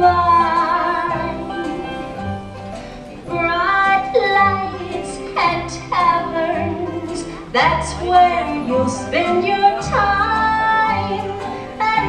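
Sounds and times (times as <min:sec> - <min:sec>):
woman singing country ballad: 0:00.0 - 0:02.0, 0:03.3 - 0:12.0
band accompaniment: 0:00.0 - 0:12.0.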